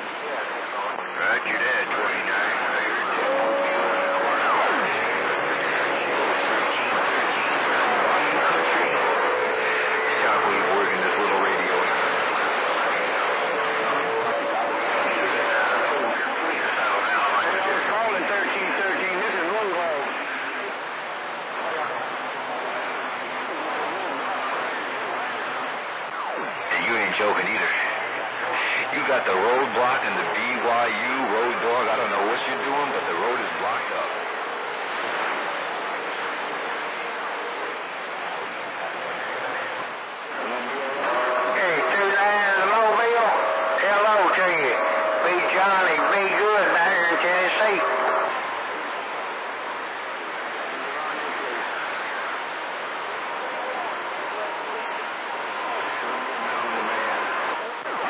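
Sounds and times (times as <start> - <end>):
garbled radio voices: 0.0 - 58.0
radio static: 0.0 - 58.0
steady radio whistle: 0.8 - 22.9, 23.5 - 58.0.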